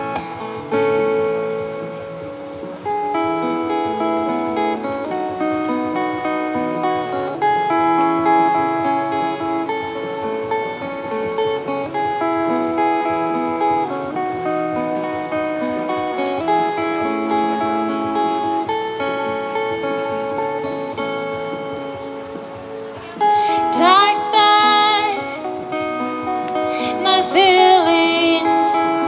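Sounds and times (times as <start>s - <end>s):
solo acoustic guitar: 0.0s - 29.0s
woman singing: 23.0s - 29.0s.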